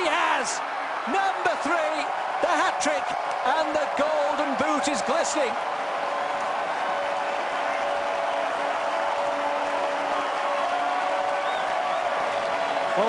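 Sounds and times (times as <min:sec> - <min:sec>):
stadium crowd cheering: 0:00.0 - 0:13.0.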